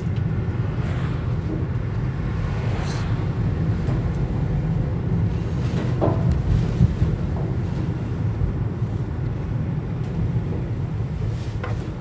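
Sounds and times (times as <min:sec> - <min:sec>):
car interior engine and tyre rumble: 0:00.0 - 0:12.0.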